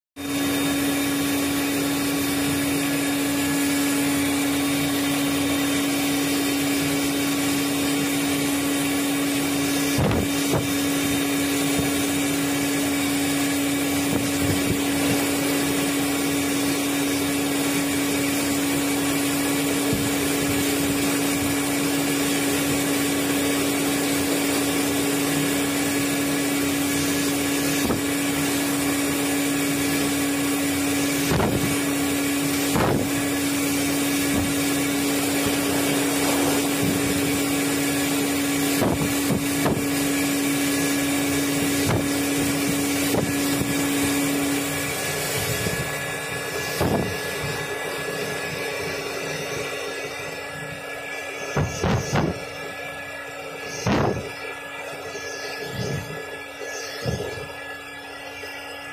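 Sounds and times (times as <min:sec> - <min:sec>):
blow dryer running: 0:00.2 - 0:58.9.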